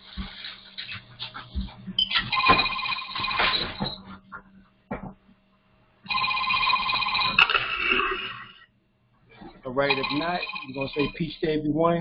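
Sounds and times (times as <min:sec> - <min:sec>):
electronic telephone ringing: 0:02.3 - 0:03.9, 0:06.1 - 0:08.5, 0:09.7 - 0:11.3.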